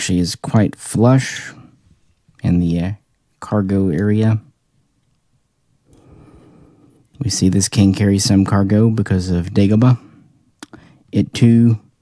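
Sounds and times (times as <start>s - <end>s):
person drawing breath: 5.9s - 7.1s.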